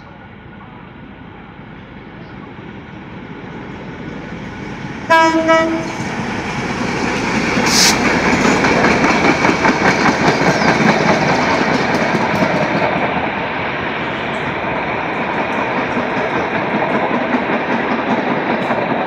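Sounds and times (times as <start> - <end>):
train wheels clicking over rail joints: 5.9 - 13.2, 14.1 - 19.0
short hiss: 7.6 - 8.0.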